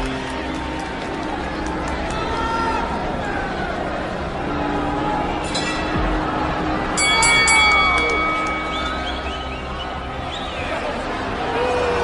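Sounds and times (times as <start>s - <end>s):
crowd hum: 0.0s - 12.0s.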